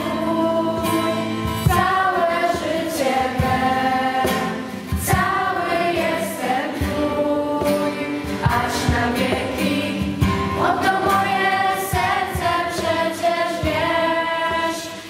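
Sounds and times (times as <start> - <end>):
acoustic guitar strumming: 0.0 - 15.0
girls singing a hymn: 0.0 - 15.0.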